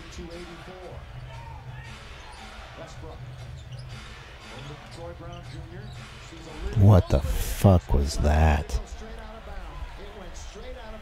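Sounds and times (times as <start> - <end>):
arena crowd murmur: 6.7 - 11.0.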